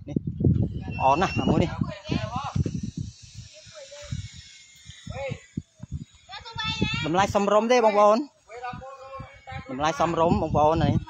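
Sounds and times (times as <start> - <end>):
faint hiss: 2.2 - 9.4.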